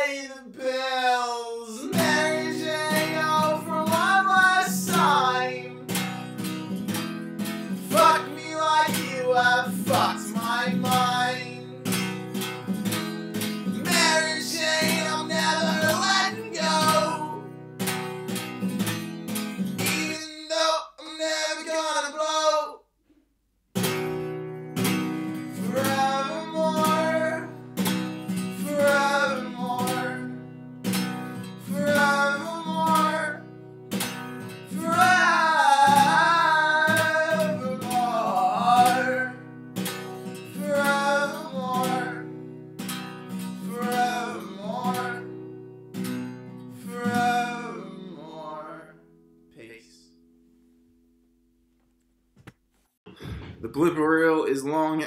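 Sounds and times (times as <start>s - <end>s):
man singing: 0.0s - 6.1s, 7.6s - 12.0s, 13.7s - 17.5s, 19.8s - 22.9s, 25.4s - 27.7s, 28.4s - 30.4s, 31.6s - 33.5s, 34.7s - 39.5s, 40.3s - 42.5s, 43.5s - 45.5s, 46.8s - 49.0s
acoustic guitar strumming: 0.0s - 22.7s, 23.7s - 51.3s.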